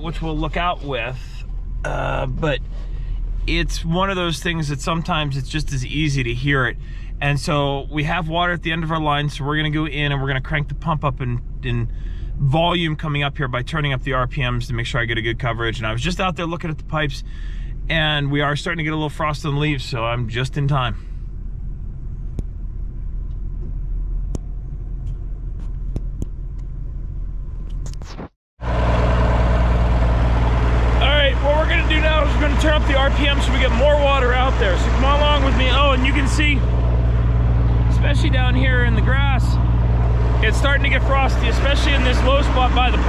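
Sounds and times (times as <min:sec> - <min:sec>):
man talking: 0:00.0 - 0:02.6, 0:03.5 - 0:17.3, 0:17.9 - 0:21.0, 0:31.0 - 0:36.6, 0:37.9 - 0:39.6, 0:40.4 - 0:43.0
pump engine running: 0:28.6 - 0:43.0.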